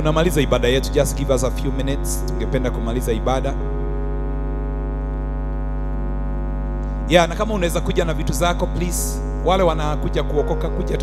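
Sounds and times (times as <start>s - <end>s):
electronic organ chord: 0.0s - 11.0s
mains hum: 0.0s - 11.0s.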